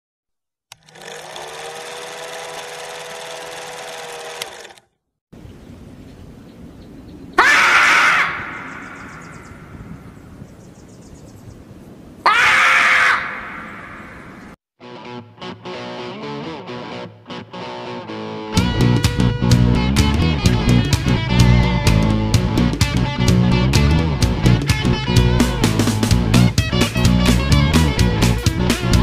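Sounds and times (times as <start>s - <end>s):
marmot screaming: 7.4s - 9.8s, 12.2s - 14.5s.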